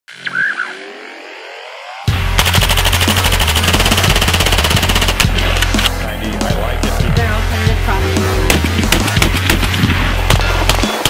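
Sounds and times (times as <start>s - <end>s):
rising sweep: 0.1s - 4.4s
heavy bass beat: 2.1s - 11.0s
automatic gunfire: 2.4s - 5.8s.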